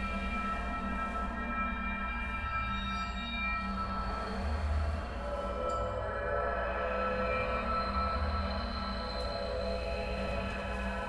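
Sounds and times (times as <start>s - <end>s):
ambient electronic drone: 0.0s - 11.0s.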